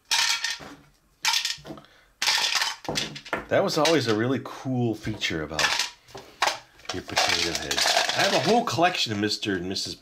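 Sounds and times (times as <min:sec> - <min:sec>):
plastic toy pieces rattling: 0:00.0 - 0:04.2, 0:05.6 - 0:08.8.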